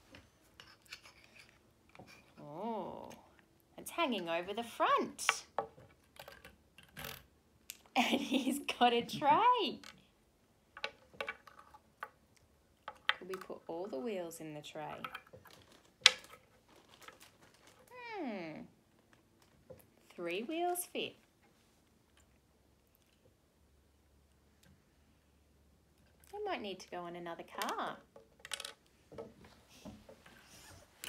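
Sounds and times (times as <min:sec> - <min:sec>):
toy handling: 0:15.0 - 0:18.0.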